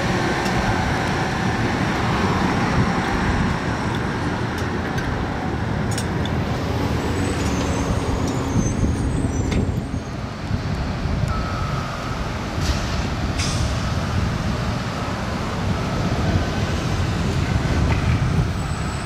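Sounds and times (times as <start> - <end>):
bus engine rumble: 0.0 - 19.0
engine whine: 0.0 - 19.0
traffic: 0.0 - 19.0
air brakes hissing: 12.6 - 14.0.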